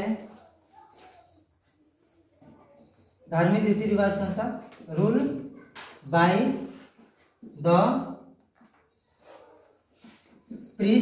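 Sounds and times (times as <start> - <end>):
marker squeaking on whiteboard: 0.2 - 11.0
man speaking: 3.3 - 5.5
marker scratching on whiteboard: 8.9 - 11.0.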